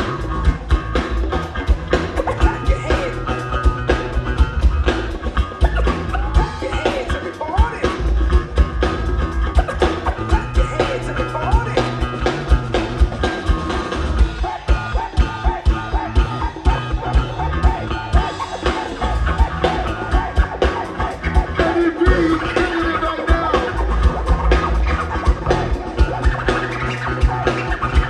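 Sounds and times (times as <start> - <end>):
drum kit beat: 0.0 - 28.0
electric guitar: 0.0 - 28.0.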